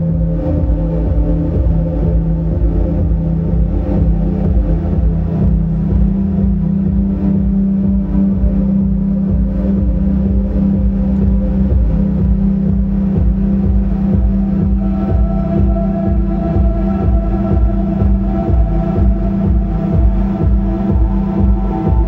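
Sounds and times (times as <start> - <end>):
ambient drone music: 0.0 - 22.0.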